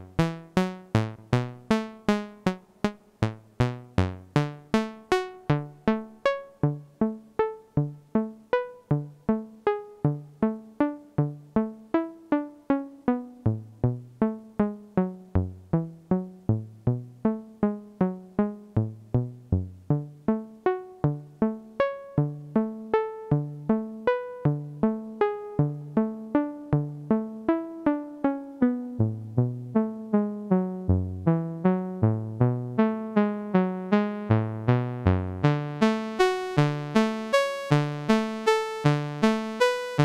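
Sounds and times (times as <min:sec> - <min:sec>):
synthesizer plucked note sequence: 0:00.0 - 0:40.0.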